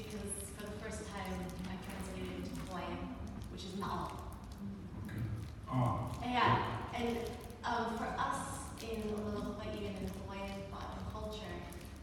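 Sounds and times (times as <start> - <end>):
person talking: 5.1 - 11.6.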